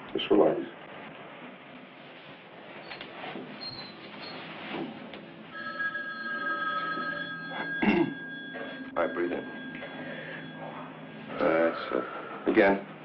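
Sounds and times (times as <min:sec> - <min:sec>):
high ringing tones: 0:05.4 - 0:12.4.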